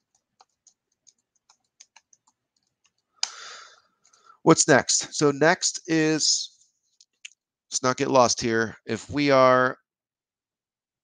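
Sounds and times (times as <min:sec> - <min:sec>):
computer keyboard keystrokes: 0:00.0 - 0:03.4.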